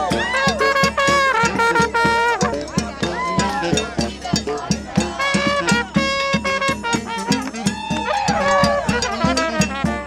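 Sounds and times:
trumpet falling phrases: 0.0s - 4.2s, 5.0s - 10.0s
jazz band playing: 0.0s - 10.0s
percussion hits: 0.0s - 10.0s.

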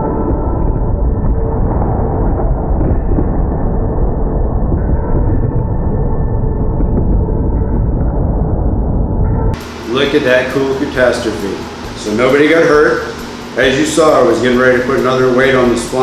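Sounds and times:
muffled deep rumble: 0.0s - 10.0s.

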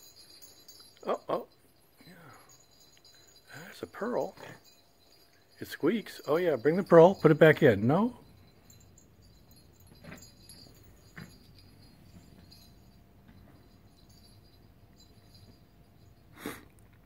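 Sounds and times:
collar tag jingling: 0.0s - 17.0s.

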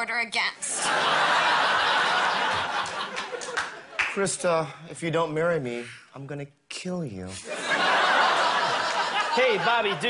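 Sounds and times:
audience laughing: 0.7s - 4.0s, 7.4s - 10.0s.

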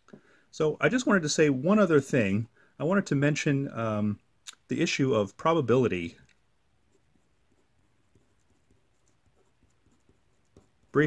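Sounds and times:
marker scratching on surface: 6.8s - 11.0s.

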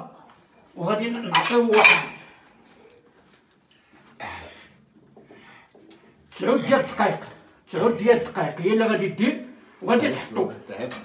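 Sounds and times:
dishes and cutlery clattering: 1.2s - 2.3s
dishes clanking: 1.2s - 2.3s.

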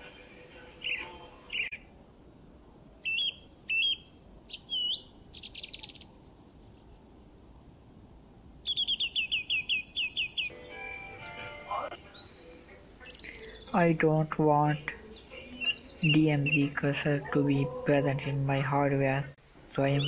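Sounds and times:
birds chirping: 0.0s - 1.9s, 2.9s - 7.1s, 8.6s - 20.0s.

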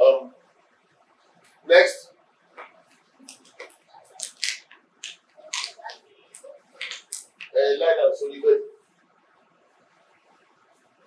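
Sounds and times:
man speaking through microphone: 7.5s - 8.8s.

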